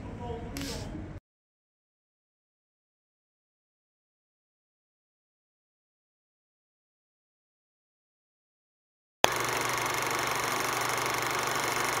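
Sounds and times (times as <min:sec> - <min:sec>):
film projector whirring: 0:09.2 - 0:12.0.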